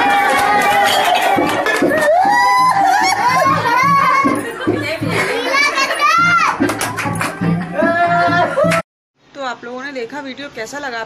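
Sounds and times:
group of voices talking: 2.8 - 8.8.

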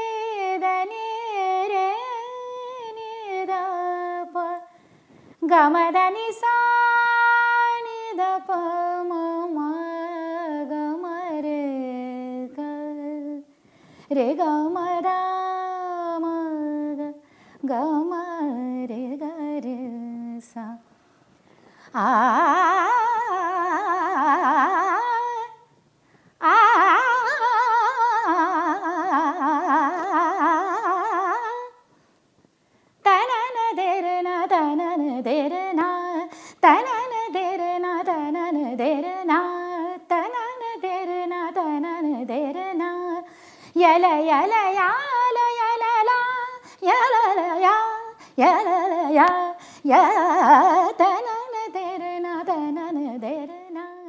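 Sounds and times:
woman singing unaccompanied: 0.0 - 4.8, 5.4 - 20.9, 21.9 - 25.8, 26.4 - 31.9, 33.0 - 54.0.

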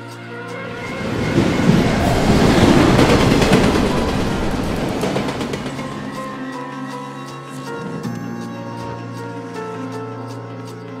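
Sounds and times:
music: 0.0 - 11.0
tram wheels on rails: 0.5 - 6.6.

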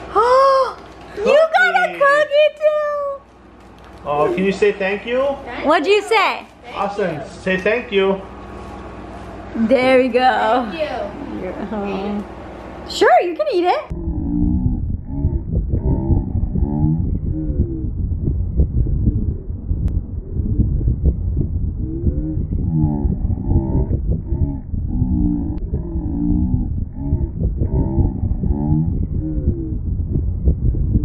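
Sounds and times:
deep wavering moaning tones: 13.9 - 31.0
dense low rumble: 13.9 - 31.0.

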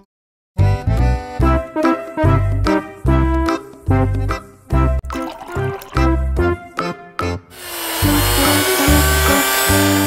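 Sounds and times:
background music with bass line: 0.6 - 5.2, 5.9 - 10.0
electric hand mixer running: 7.5 - 10.0.

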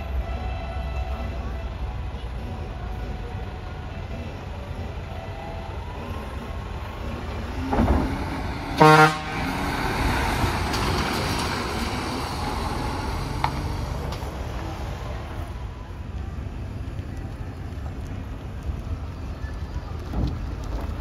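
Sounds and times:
diesel truck engine pulling away: 0.0 - 21.0
truck horn toot: 8.6 - 9.7.

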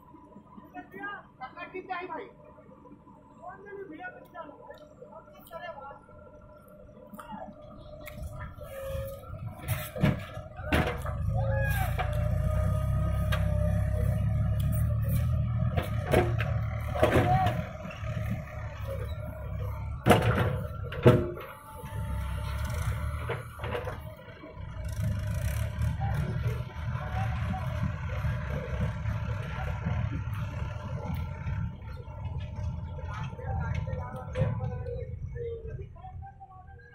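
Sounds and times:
diesel engine under load: 0.0 - 36.9.

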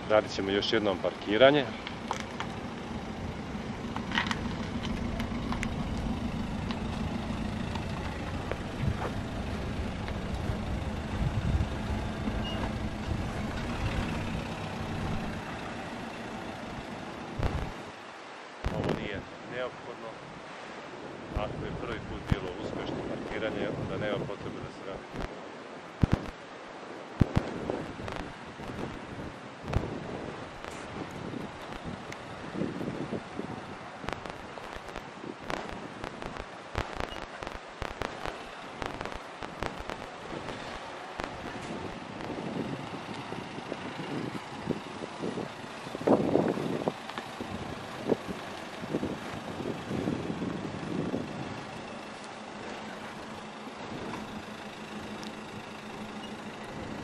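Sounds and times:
wind on microphone: 0.0 - 17.9, 18.6 - 19.3, 20.2 - 57.0
car engine at low revs: 0.0 - 19.2, 26.0 - 57.0.

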